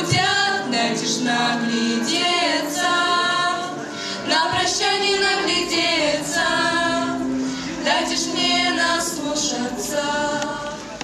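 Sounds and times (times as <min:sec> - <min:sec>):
girls singing together: 0:00.0 - 0:11.0.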